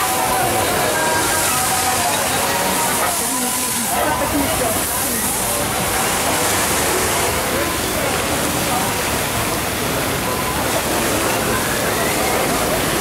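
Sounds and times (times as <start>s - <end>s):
crowd chatter: 0.0s - 13.0s
water rushing: 0.0s - 13.0s.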